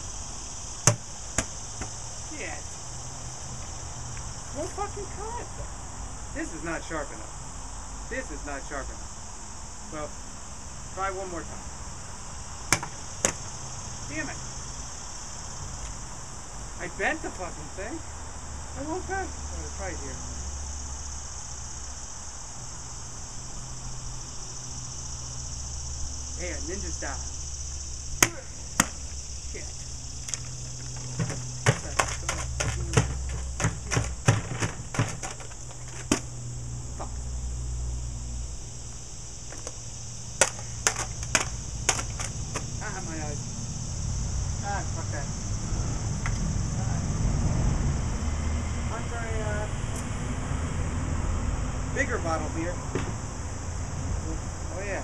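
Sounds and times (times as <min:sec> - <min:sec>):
insects droning in grass: 0:00.0 - 0:55.0
plastic bottle clicks: 0:40.4 - 0:42.6.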